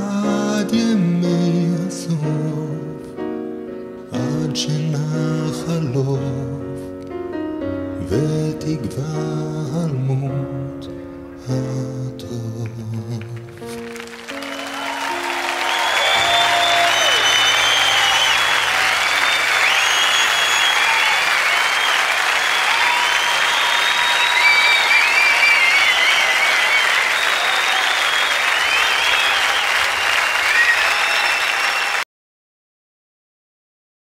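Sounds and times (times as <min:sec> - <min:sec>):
audience applauding: 0:13.2 - 0:32.0
whistles and cheers: 0:14.2 - 0:32.0.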